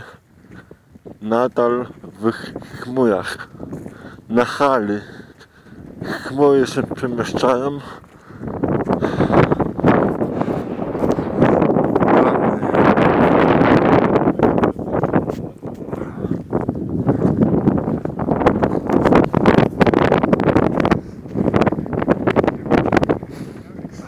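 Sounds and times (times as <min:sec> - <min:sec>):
wind buffeting a microphone: 0:00.0 - 0:24.0.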